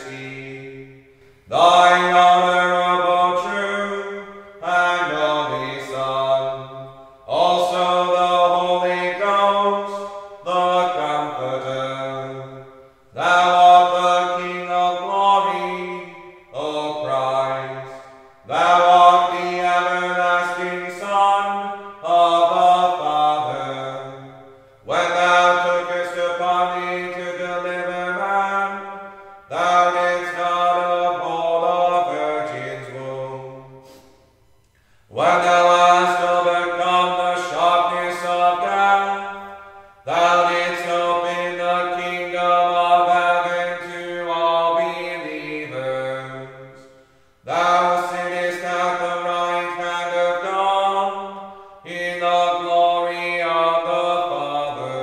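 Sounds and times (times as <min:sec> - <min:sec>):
chant on long held notes: 0:00.0 - 0:34.1, 0:35.1 - 0:55.0.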